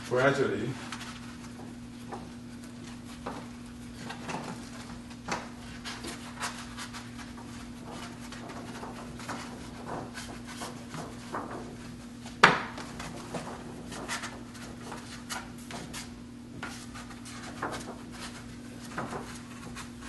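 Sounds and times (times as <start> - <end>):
scroll rustling and rubbing: 0.0 - 20.0.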